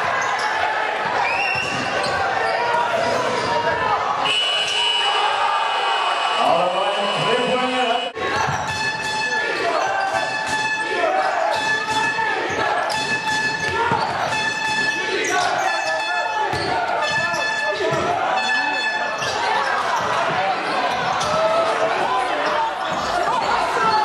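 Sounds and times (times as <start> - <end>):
voices echoing in hall: 0.0 - 24.0
short high tones: 4.3 - 8.1
basketball bouncing on court: 12.9 - 14.9, 16.5 - 18.2.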